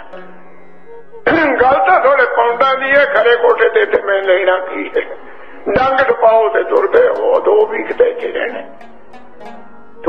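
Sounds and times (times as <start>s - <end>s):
man speaking: 1.2s - 8.8s.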